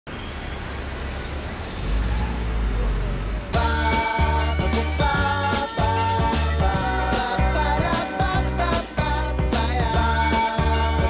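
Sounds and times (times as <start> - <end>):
city traffic rumble: 0.1 - 7.0.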